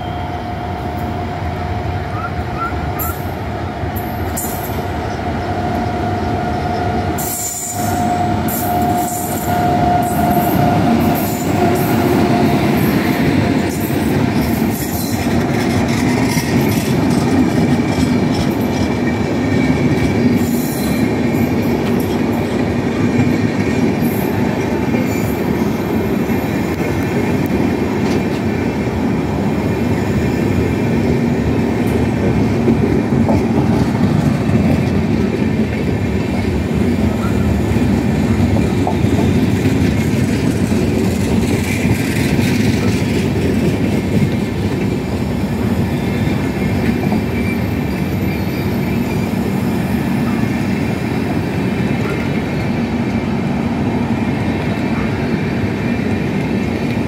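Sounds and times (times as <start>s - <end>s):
locomotive whine: 0.0s - 57.0s
train wheels rumbling on rail: 0.0s - 57.0s
wheels clacking over rail joints: 6.7s - 25.4s, 31.0s - 48.1s.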